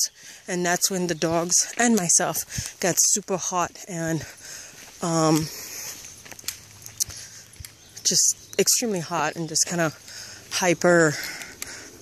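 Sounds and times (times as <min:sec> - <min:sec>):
faint outdoor background: 0:00.0 - 0:12.0
footsteps on dirt road: 0:00.0 - 0:12.0.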